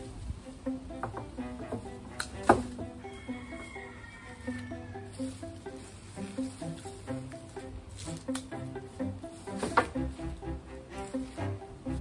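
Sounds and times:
light background melody: 0.0s - 12.0s.

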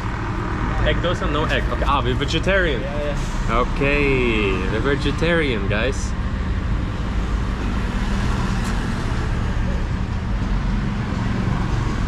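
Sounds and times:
road noise: 0.0s - 12.0s
vehicle engines running: 0.0s - 12.0s.

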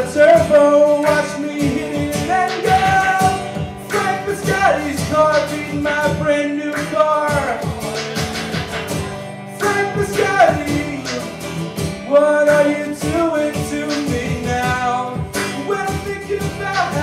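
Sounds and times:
man singing: 0.0s - 8.4s, 9.5s - 17.0s
acoustic guitar strumming: 0.0s - 17.0s
electronic percussion pad beats: 7.3s - 12.0s.

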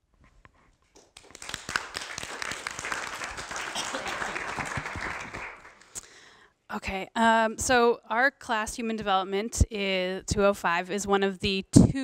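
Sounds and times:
audience applauding: 1.0s - 6.0s.

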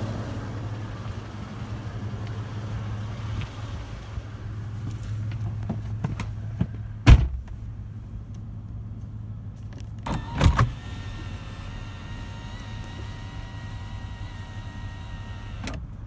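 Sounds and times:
sunroof electric motor running: 10.2s - 15.7s.

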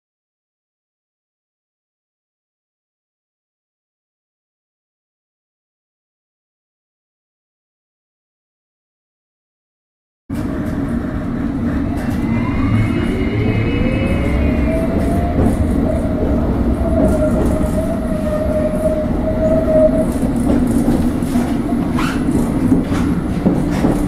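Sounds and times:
train traction motor whine: 10.3s - 22.0s
wheels rumbling on track: 10.3s - 24.0s.

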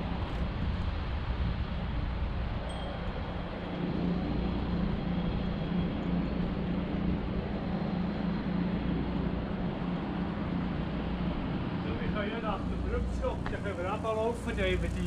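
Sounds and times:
road noise: 0.0s - 15.0s
vehicle engine drone: 0.0s - 15.0s.

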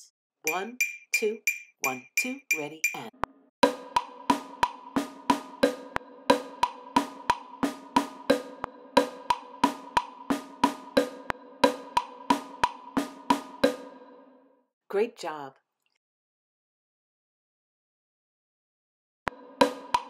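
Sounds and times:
wood blocks: 0.5s - 3.1s
snare drum strikes: 4.0s - 13.8s, 19.6s - 20.0s.

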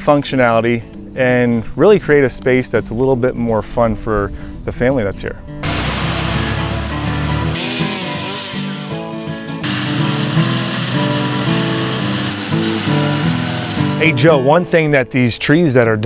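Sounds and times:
background music: 2.2s - 16.0s
chainsaw running: 5.6s - 14.4s
stump grinder running: 5.6s - 14.4s
wood chipper running: 5.6s - 14.4s.

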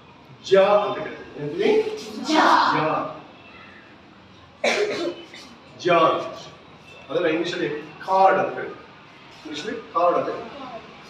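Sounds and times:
man speaking: 0.5s - 3.2s, 5.8s - 8.8s, 9.5s - 10.5s
man coughing: 4.6s - 5.6s.

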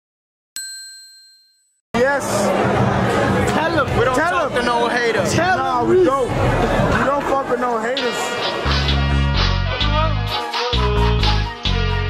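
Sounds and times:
metallic bell ding: 0.6s - 1.8s
loud voices: 2.0s - 12.0s
music: 2.6s - 12.0s.

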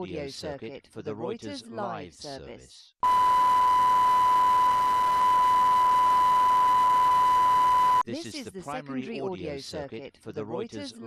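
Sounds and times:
steady pure test tone: 3.0s - 8.0s.

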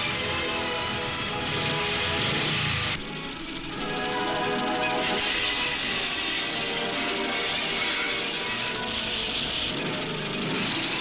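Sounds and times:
low motor-like drone: 0.0s - 11.0s.

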